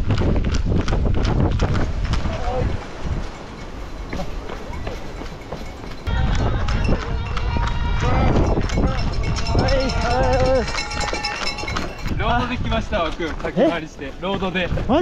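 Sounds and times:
footsteps on dirt trail: 0:00.0 - 0:15.0
people shouting and cheering: 0:06.0 - 0:12.2.

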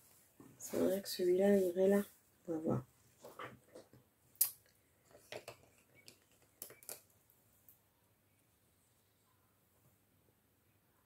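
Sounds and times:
coloured pencils clicking together: 0:03.7 - 0:07.2.

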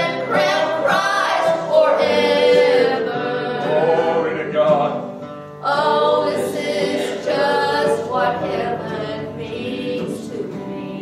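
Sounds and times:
woman singing a hymn: 0:00.0 - 0:03.9, 0:05.6 - 0:11.0
guitar: 0:00.0 - 0:11.0
mandolin: 0:00.0 - 0:11.0.

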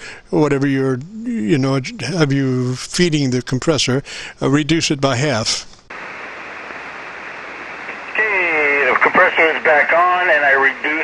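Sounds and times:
radio receiver band noise hiss: 0:05.4 - 0:11.0.

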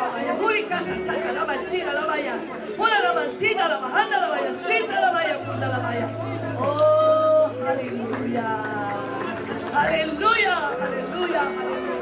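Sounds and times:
people praying aloud: 0:00.0 - 0:12.0.

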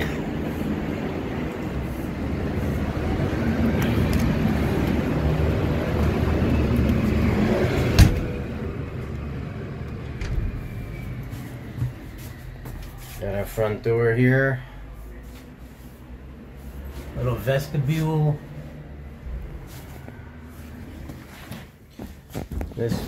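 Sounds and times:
vehicle passing with low rumble: 0:00.0 - 0:21.9.

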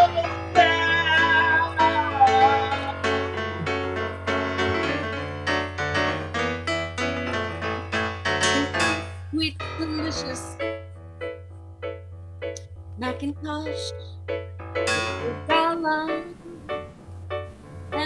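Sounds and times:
piano-style keyboard playing: 0:00.0 - 0:18.0.

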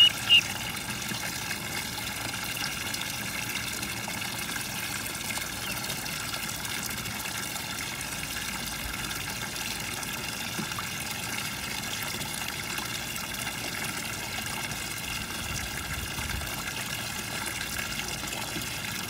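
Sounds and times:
ducklings peeping: 0:00.0 - 0:00.6
water rushing in a plastic tub: 0:00.0 - 0:19.0.

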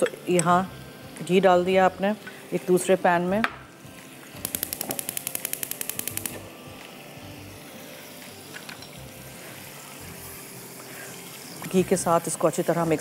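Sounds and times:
gas igniter clicking rapidly: 0:04.4 - 0:06.5.

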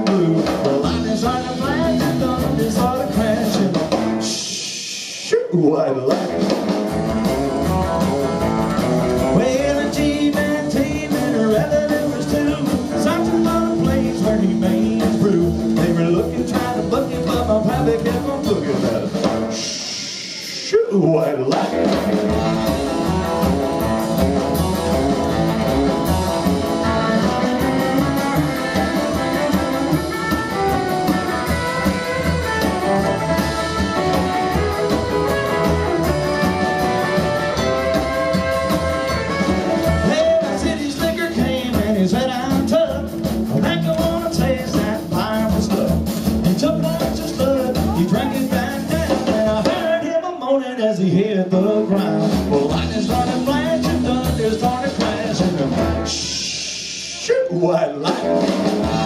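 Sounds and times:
rockabilly band playing: 0:00.0 - 0:59.0.

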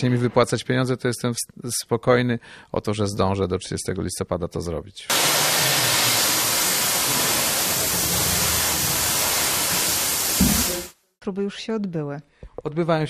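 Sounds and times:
loud hissing rush of sparks: 0:05.1 - 0:11.0.

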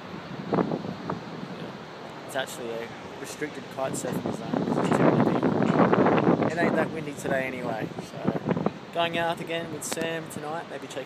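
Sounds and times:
wind rushing on microphone: 0:00.0 - 0:11.0.

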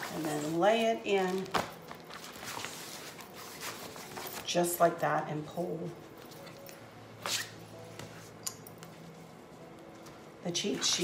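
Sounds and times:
fabric and plastic board rustling: 0:00.0 - 0:04.6.

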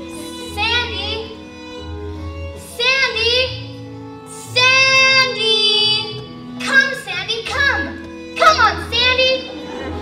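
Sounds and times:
pit orchestra underscoring: 0:00.0 - 0:10.0.

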